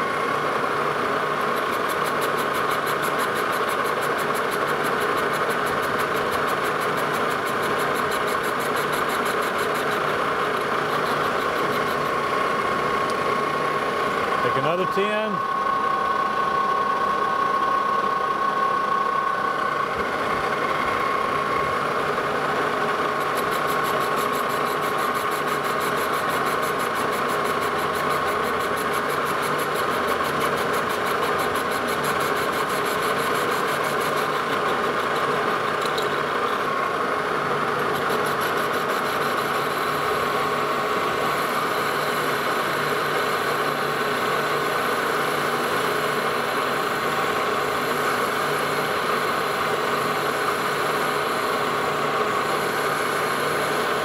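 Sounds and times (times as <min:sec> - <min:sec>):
metal lathe whining: 0:00.0 - 0:54.0.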